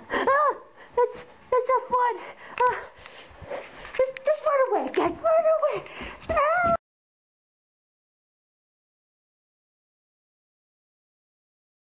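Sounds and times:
person crying and whimpering: 0.0 - 1.2, 5.3 - 6.8.

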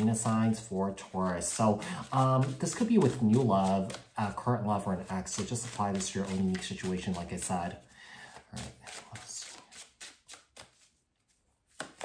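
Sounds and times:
cards clicking and rustling: 1.4 - 12.0.

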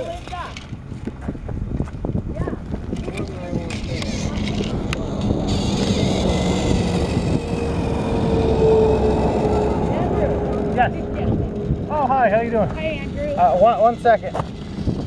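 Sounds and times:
traffic noise: 0.0 - 15.0
toy train motor whirring: 2.9 - 10.0, 12.0 - 15.0.

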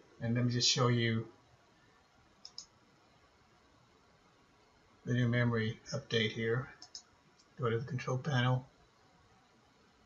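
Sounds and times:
computer mouse clicks: 2.4 - 2.8, 6.8 - 7.6.

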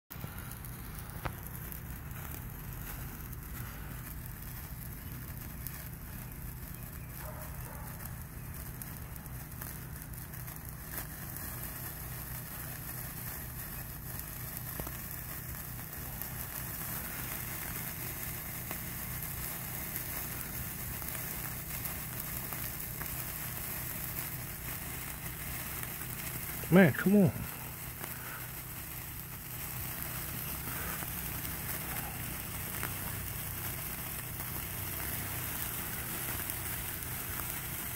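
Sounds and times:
sparklers fizzing and crackling: 0.1 - 37.9
steady low hum: 0.1 - 37.9.

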